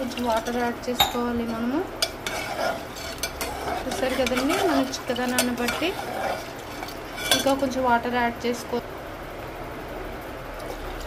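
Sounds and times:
ladle clinking and scraping pot: 0.0 - 7.8
ladle stirring in metal pot: 0.0 - 7.8.

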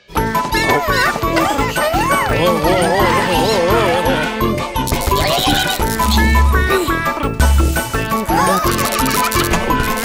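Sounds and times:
upbeat cartoon music: 0.0 - 10.0
squeaky cartoon voices chirping: 4.9 - 7.4, 8.0 - 10.0.

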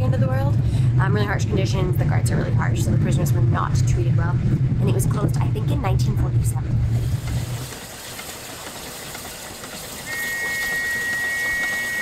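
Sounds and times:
steam whistle two-tone blast: 10.1 - 12.0.

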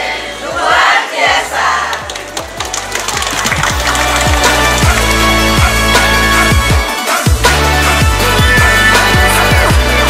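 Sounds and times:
people clapping: 1.6 - 7.0
electronic music with kick drum: 3.4 - 10.0.

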